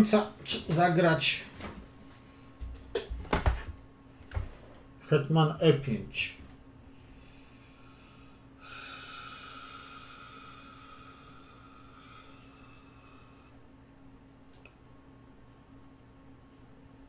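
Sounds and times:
breath out through nose: 7.1 - 13.6.

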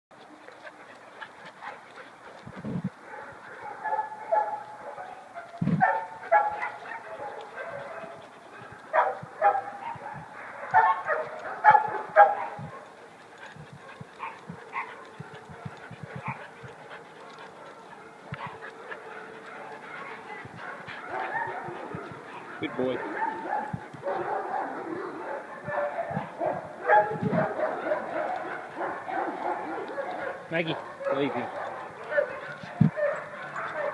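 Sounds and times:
dog barking: 3.1 - 12.9, 17.2 - 33.9.

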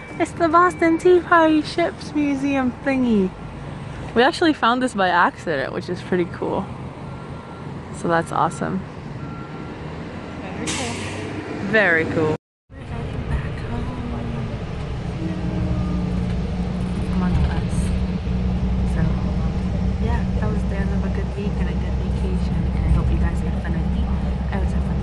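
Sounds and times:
bus engine and tyres droning: 0.0 - 25.0.

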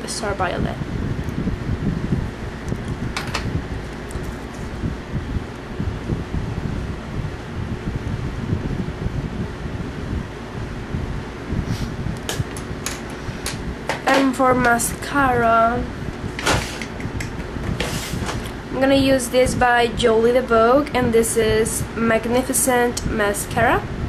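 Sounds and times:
faint hum: 0.0 - 24.0
low rumbling background noise: 0.0 - 24.0.

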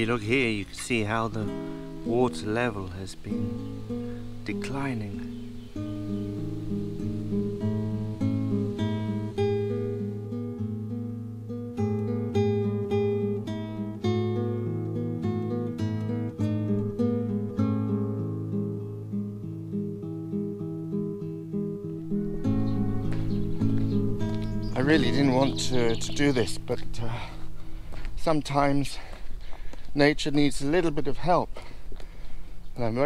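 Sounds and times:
acoustic guitar picking: 0.0 - 28.0.

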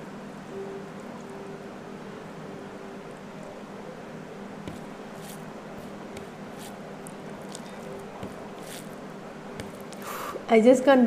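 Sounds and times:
low background hum: 0.0 - 11.0
fingers squishing wet rice: 4.7 - 9.0.

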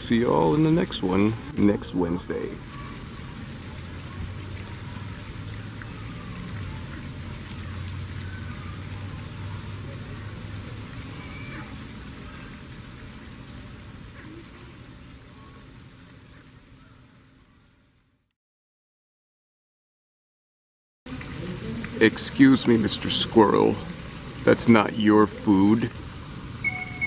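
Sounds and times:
rushing water-like noise: 0.0 - 18.2, 21.1 - 27.0.

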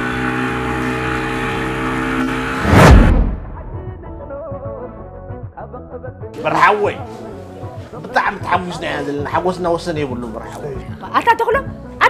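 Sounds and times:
outboard motor droning: 0.0 - 2.6.

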